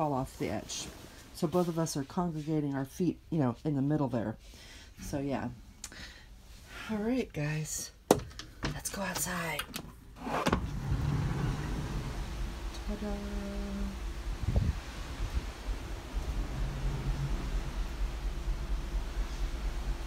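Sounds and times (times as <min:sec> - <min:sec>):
sliding door opening: 0:10.2 - 0:12.9, 0:15.9 - 0:18.3
low rumble: 0:10.6 - 0:20.0
wind and sea rushing: 0:10.6 - 0:20.0.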